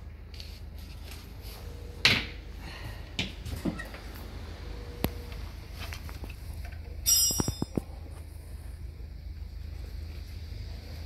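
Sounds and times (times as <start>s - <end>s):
steady low hum: 0.0s - 11.0s
bright metallic clink: 7.0s - 7.9s.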